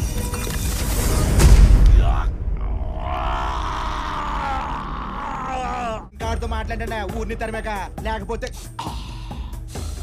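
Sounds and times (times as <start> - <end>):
man groaning in pain: 2.0 - 6.2.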